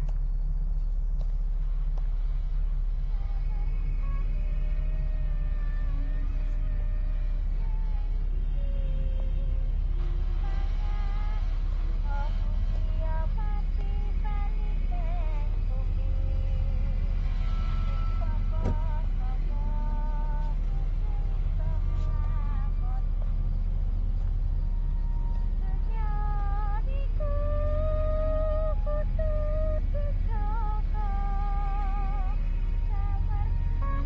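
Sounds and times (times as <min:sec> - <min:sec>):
faint wavering tones: 0:00.0 - 0:34.0
low rumbling drone: 0:00.0 - 0:34.0.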